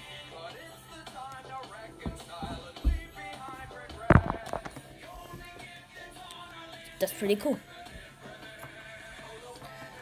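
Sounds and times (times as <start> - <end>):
background music: 0.0 - 10.0
loud thump: 4.0 - 4.7.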